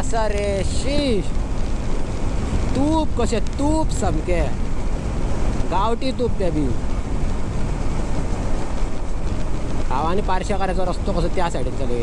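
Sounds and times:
motorcycle engine: 0.0s - 11.2s
wind rushing over microphone: 0.0s - 12.0s.

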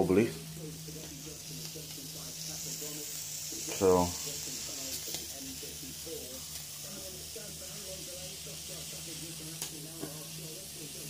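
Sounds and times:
low hum: 0.0s - 9.5s
liquid hissing in saucepan: 0.0s - 11.0s.

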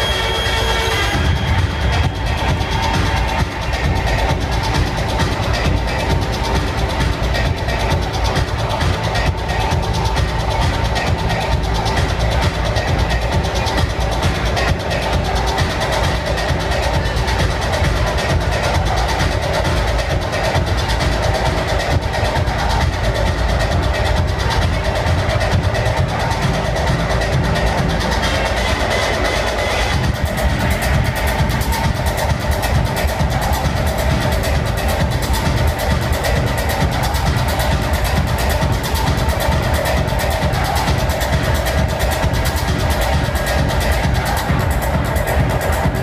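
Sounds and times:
high percussion pattern: 0.0s - 46.0s
loud techno music: 0.0s - 46.0s.

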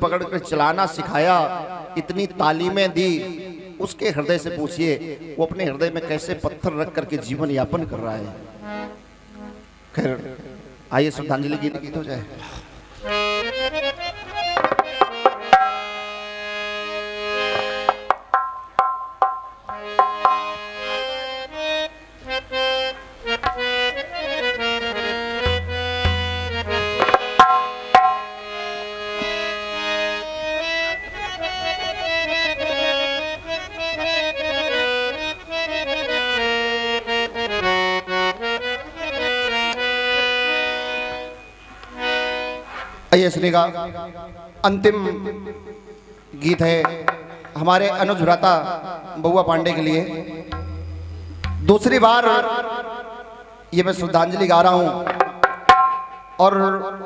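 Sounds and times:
harmonium melody: 0.0s - 57.0s
hand drum strokes: 14.5s - 16.0s, 17.4s - 20.7s, 25.4s - 28.4s.

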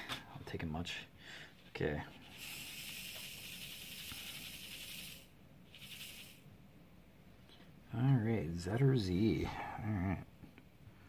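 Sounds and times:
beads rattling in plastic tray: 2.3s - 6.4s.

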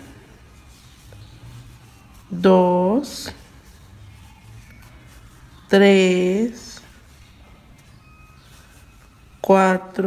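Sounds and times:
crochet hook rustling yarn: 0.0s - 10.0s.

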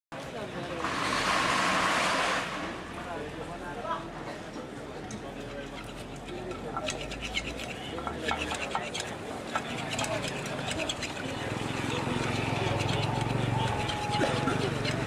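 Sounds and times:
people talking: 0.2s - 1.4s, 2.2s - 15.0s.

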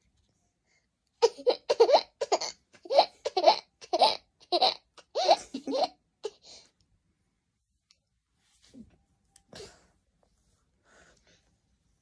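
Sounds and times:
toddler giggling: 1.2s - 6.4s.

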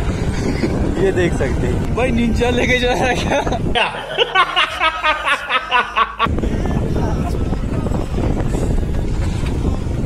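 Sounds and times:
wind buffeting microphone: 0.0s - 5.5s, 6.2s - 10.0s
continuous low rumble: 0.0s - 10.0s.

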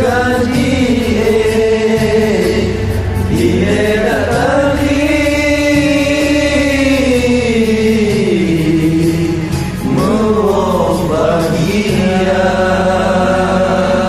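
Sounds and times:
low steady accompaniment: 0.0s - 14.0s.

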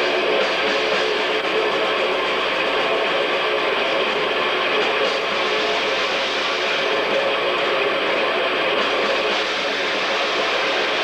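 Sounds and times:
live death metal band: 0.0s - 11.0s.

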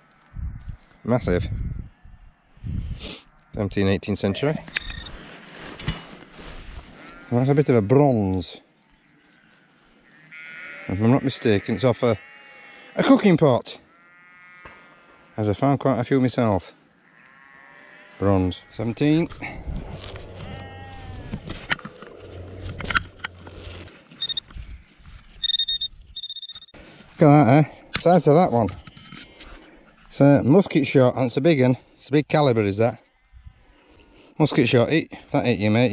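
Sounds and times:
sheep bleating: 6.8s - 8.0s, 9.0s - 15.6s, 16.9s - 25.1s
high-pitched probe buzzing: 24.2s - 24.4s, 25.4s - 26.7s.

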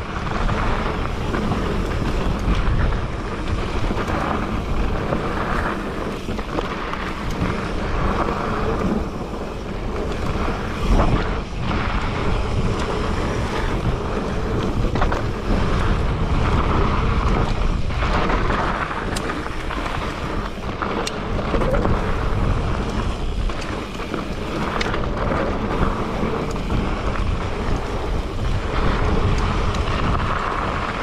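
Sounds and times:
bike tyres rumbling on trail: 0.0s - 31.0s
wind buffeting microphone: 0.0s - 31.0s.

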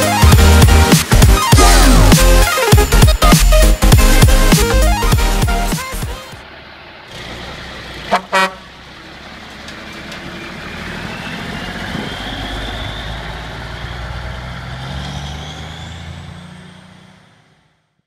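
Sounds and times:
diesel engine running: 0.0s - 17.8s
truck horn blasts: 8.0s - 8.8s
rising whine: 10.8s - 16.8s.

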